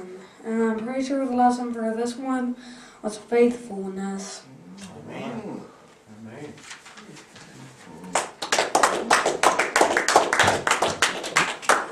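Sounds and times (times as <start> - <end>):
hands clapping: 8.0 - 11.9.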